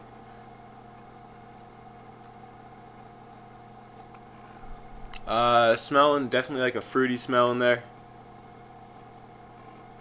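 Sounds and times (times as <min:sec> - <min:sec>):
faint low buzzing hum: 0:00.0 - 0:10.0.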